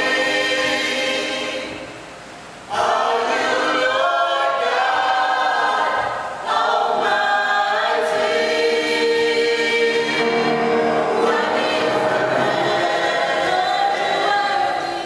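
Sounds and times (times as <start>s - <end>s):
gospel group singing in harmony: 0.0s - 15.0s.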